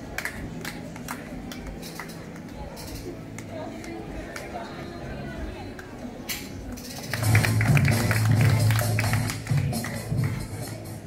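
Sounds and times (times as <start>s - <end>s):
music with bass and beat: 7.1s - 11.0s.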